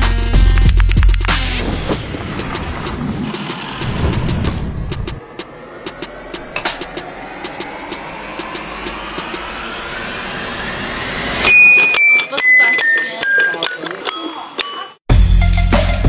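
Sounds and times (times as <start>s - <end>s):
whoosh rising in pitch: 1.4s - 11.8s
bell-like notes stepping down: 6.3s - 15.0s.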